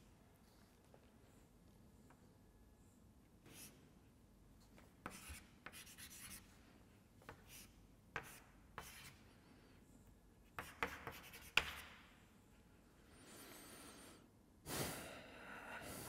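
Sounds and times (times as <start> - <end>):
chalk scratching on blackboard: 3.5 - 3.8, 5.0 - 6.5, 7.3 - 9.2, 10.5 - 12.0.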